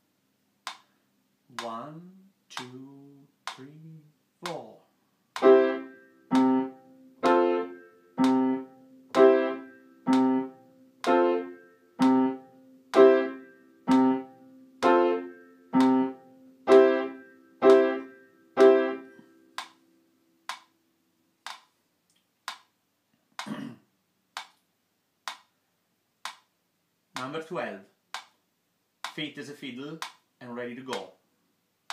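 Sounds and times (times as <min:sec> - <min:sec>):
piano chord struck repeatedly: 0:05.4 - 0:19.3.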